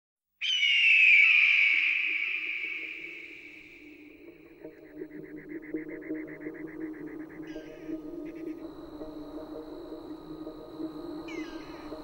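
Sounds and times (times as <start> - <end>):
long high bird call: 0.4 - 4.1.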